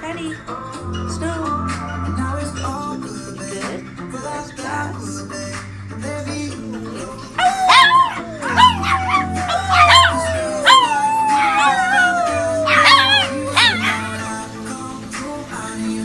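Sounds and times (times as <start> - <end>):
music: 0.0 - 16.0
small dog howling and yelping: 7.4 - 14.4.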